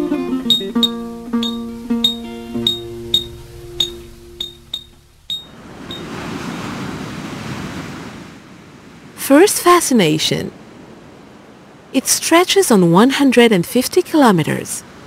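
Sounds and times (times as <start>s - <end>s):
plucked guitar music: 0.0s - 6.0s
ocean surf breaking: 0.9s - 9.2s.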